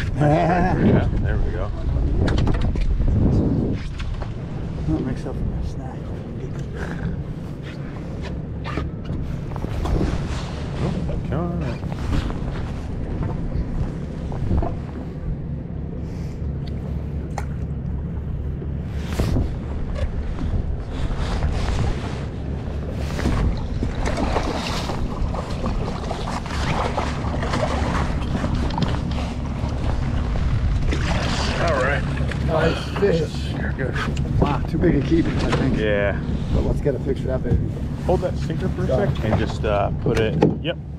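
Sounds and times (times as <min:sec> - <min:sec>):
wind buffeting microphone: 0:00.0 - 0:16.0, 0:17.0 - 0:32.6
boat engine idling: 0:04.2 - 0:40.9.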